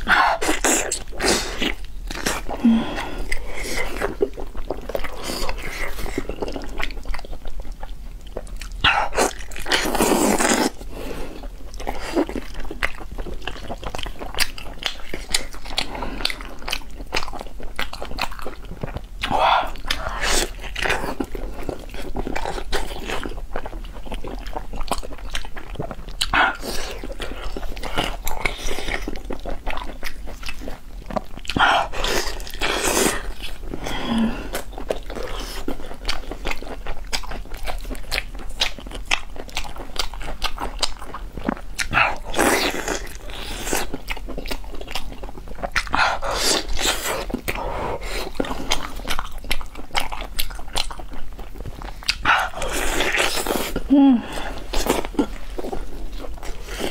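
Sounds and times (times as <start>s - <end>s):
wet chewing and biting: 0.0s - 56.9s.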